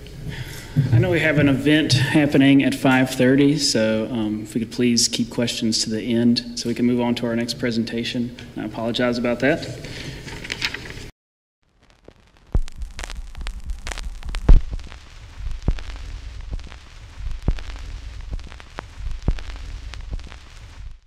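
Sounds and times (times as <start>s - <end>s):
crackling hiss with pops: 11.7s - 21.0s
low hum: 11.9s - 21.0s.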